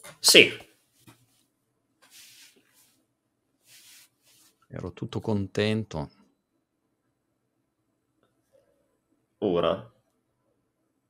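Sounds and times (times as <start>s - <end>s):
soft hiss: 0.0s - 4.8s.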